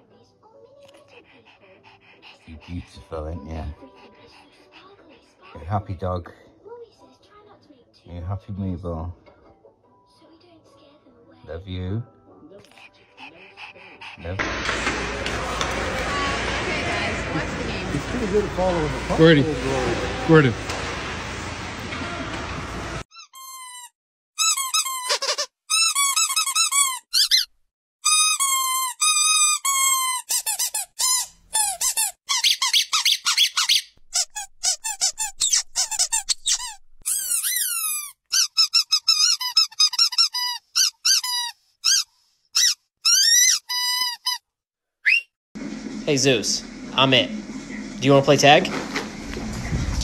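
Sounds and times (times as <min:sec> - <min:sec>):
squeaky dog toy squeaking: 0:23.1 - 0:44.4.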